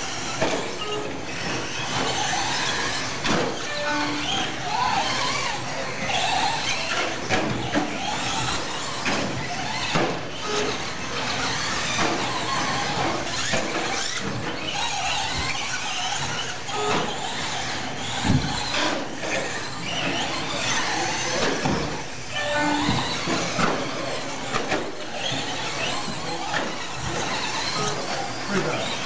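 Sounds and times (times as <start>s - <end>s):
rc truck motors whining: 0.0s - 29.0s.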